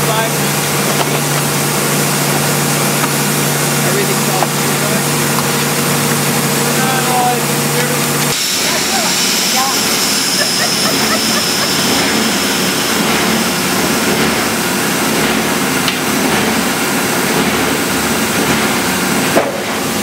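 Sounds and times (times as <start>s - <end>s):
high machine whine: 0.0s - 20.0s
molding machines running: 0.0s - 20.0s.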